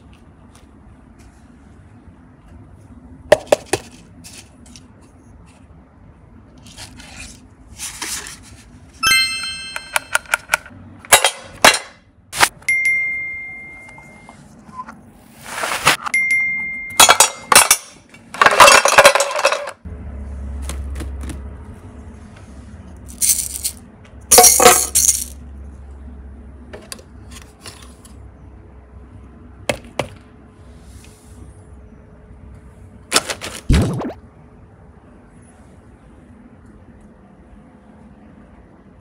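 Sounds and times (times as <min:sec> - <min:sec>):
chime-like ringing tones: 0:09.0 - 0:10.2, 0:12.6 - 0:14.4, 0:16.1 - 0:17.5
plastic toys clicking and rattling: 0:17.0 - 0:19.8, 0:23.1 - 0:25.4.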